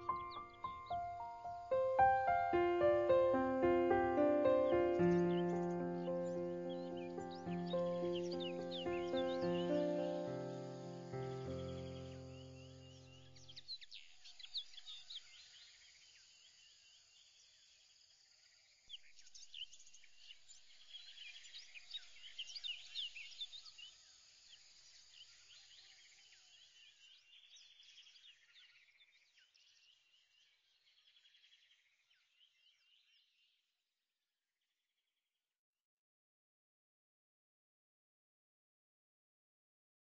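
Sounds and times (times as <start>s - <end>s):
music chord: 0.0s - 12.6s
birdsong chirps and trills: 0.0s - 16.0s.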